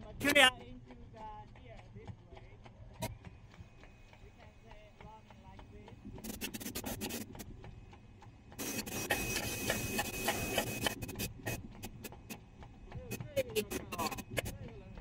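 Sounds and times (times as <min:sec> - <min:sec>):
machine hum: 0:03.0 - 0:15.0
sharp metallic clicks: 0:08.6 - 0:12.4.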